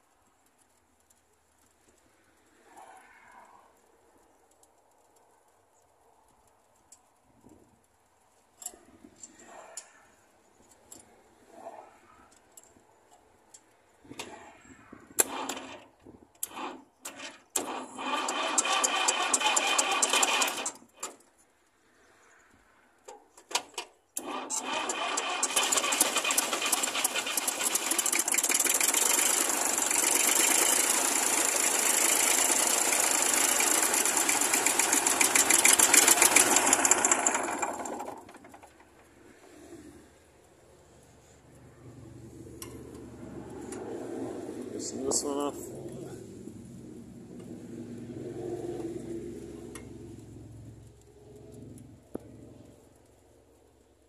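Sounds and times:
diesel engine cranking on starter: 15.2s - 21.2s, 23.6s - 40.3s.

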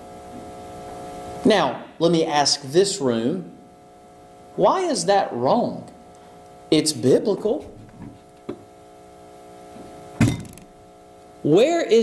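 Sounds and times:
electrical hum: 0.0s - 12.0s
knock on table: 10.2s - 10.6s.

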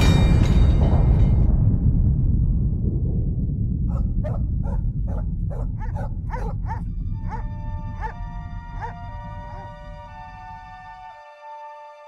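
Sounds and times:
deep rumble: 0.0s - 10.8s
animal barking: 3.9s - 9.8s.

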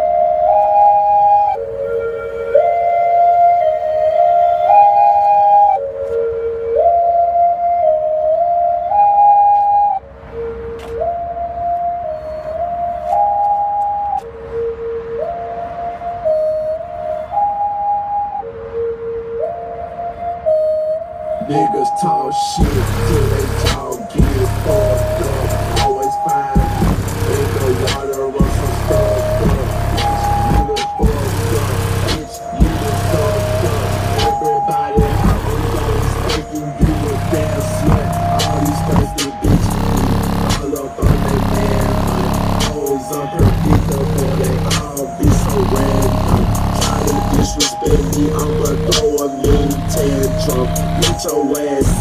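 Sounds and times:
hip-hop through car subwoofer: 21.4s - 52.0s
rap vocals: 21.4s - 52.0s.

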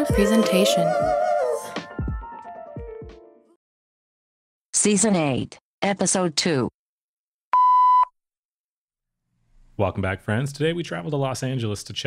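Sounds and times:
electronic beep: 7.6s - 8.1s.

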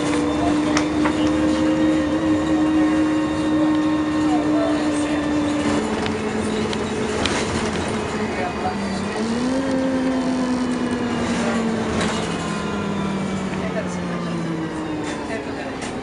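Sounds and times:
subway train motor hum: 0.0s - 16.0s.

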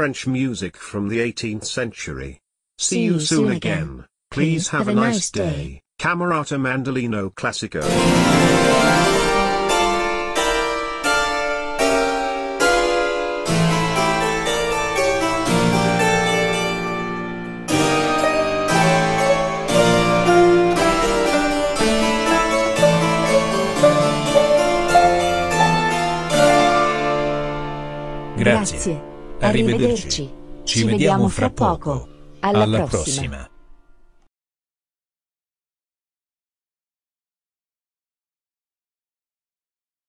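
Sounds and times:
harpsichord music: 7.8s - 33.5s.

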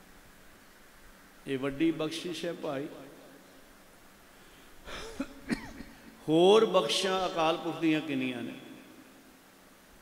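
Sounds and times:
man coughing: 4.9s - 6.1s.

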